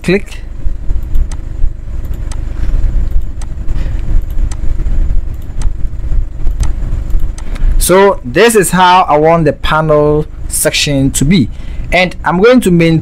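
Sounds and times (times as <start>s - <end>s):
loud low rumble: 0.0s - 13.0s.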